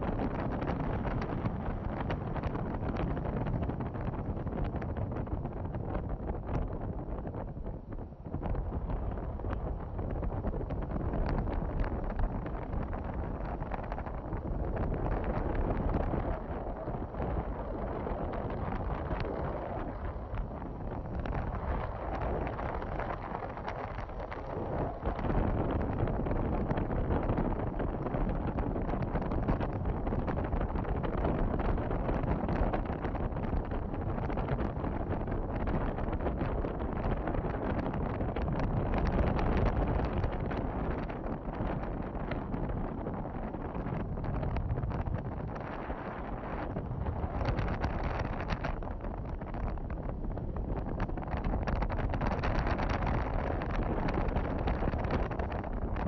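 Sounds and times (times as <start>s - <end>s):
wind noise on microphone: 0.0s - 56.0s.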